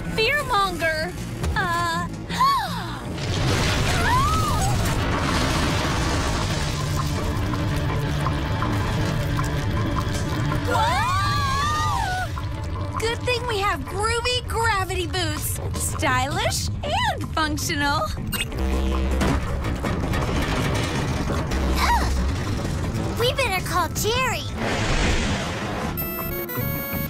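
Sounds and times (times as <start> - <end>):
cartoon music: 26.0 - 27.0.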